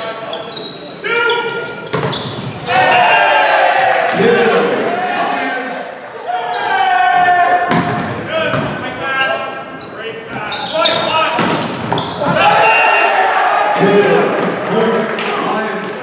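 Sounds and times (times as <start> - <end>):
players shouting: 2.6 - 8.6, 10.4 - 16.0
volleyball hits: 7.6 - 8.8.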